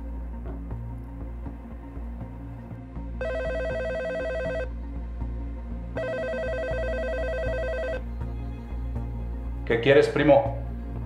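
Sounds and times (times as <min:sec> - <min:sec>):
soft background music: 0:00.0 - 0:11.0
electronic telephone ringing: 0:03.2 - 0:04.7, 0:06.0 - 0:08.0.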